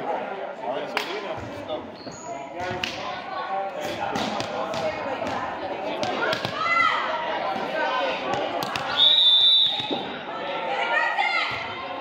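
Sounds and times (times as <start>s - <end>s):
players chatting: 0.0s - 12.0s
volleyballs struck and bouncing: 2.6s - 3.1s, 3.8s - 9.0s.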